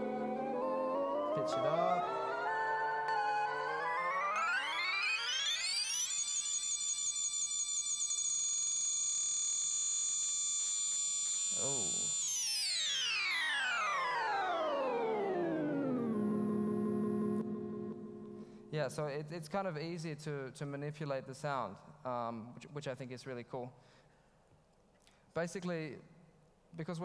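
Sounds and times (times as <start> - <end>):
synthesizer pitch gliding: 0.0 - 6.3, 11.6 - 19.1.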